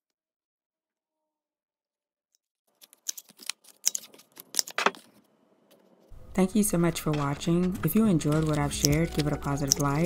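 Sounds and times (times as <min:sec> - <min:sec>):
corner punch clicking through card: 0:02.8 - 0:05.1, 0:07.0 - 0:10.0.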